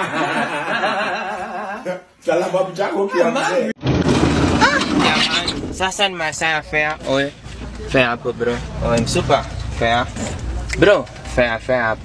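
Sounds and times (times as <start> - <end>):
man talking: 1.8 - 3.8
minibus engine and road rumble: 4.4 - 12.0.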